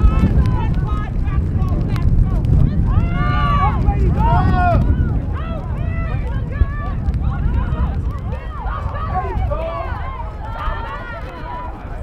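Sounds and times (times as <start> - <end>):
players shouting and calling: 0.0 - 12.0
wind rumble on microphone: 0.0 - 12.0.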